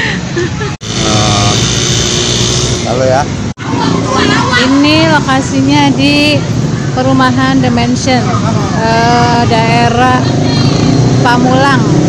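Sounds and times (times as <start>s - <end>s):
motorbike engine running: 0.8s - 3.2s.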